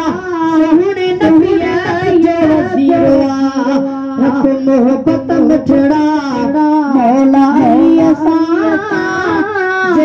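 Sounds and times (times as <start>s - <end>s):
instrumental accompaniment: 0.0s - 10.0s
person singing devotional song: 0.0s - 10.0s.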